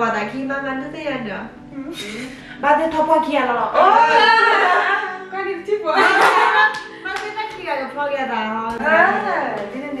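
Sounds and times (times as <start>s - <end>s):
hand claps: 6.3s - 7.8s.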